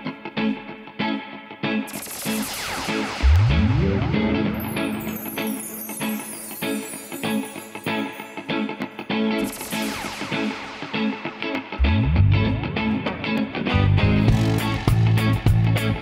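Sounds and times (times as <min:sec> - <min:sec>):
electric guitars: 0:00.0 - 0:16.0
bass rising slides: 0:11.8 - 0:13.0.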